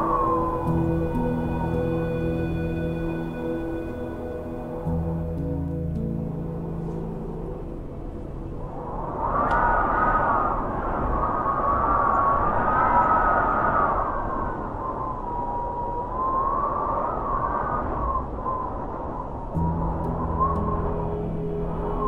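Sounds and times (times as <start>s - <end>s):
ambient music drone: 0.0s - 9.6s, 19.5s - 22.0s
wind gusting and howling: 0.0s - 22.0s.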